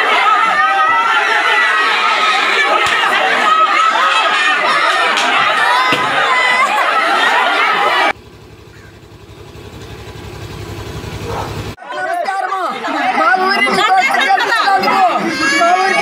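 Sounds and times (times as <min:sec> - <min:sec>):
crowd voices: 0:00.0 - 0:08.2, 0:11.2 - 0:16.0
low pulsing buzz: 0:08.1 - 0:11.8.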